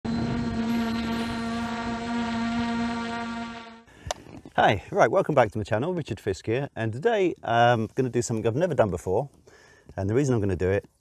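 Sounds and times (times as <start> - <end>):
drone buzzing hum: 0.0 - 3.9.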